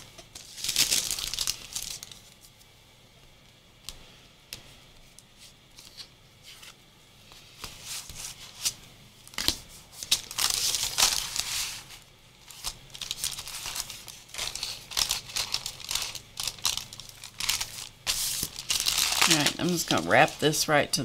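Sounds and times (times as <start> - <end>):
paper crinkling and rustling: 0.3 - 2.4, 9.4 - 20.6.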